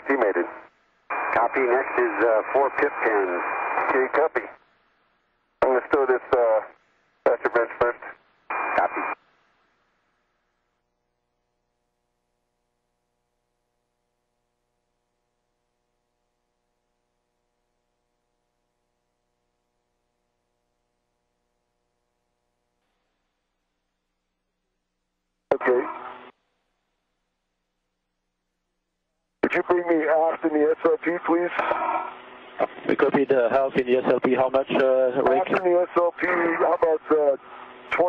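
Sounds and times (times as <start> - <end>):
man talking over radio: 0.0 - 4.6, 5.6 - 6.7, 7.3 - 9.2, 25.5 - 26.0, 29.4 - 32.0, 32.6 - 38.0
radio static with steady tone: 0.0 - 4.6, 5.6 - 9.2, 25.5 - 26.4, 29.4 - 38.0.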